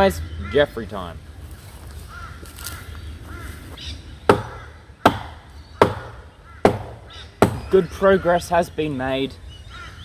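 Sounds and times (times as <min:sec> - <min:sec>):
hatchet chopping log: 0:04.3 - 0:07.8.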